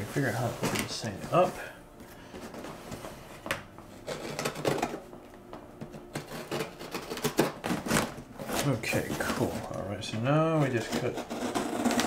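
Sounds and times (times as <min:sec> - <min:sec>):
knife cutting packing tape: 0:04.0 - 0:05.0, 0:06.1 - 0:09.4, 0:10.8 - 0:12.0.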